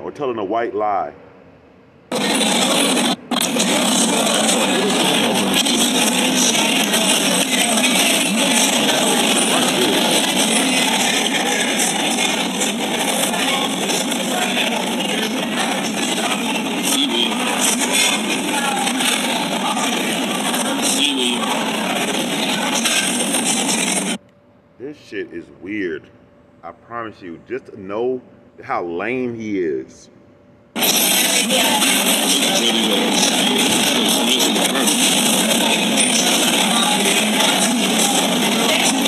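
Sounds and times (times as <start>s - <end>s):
voices: 2.1s - 24.2s, 24.8s - 30.1s, 30.8s - 39.0s.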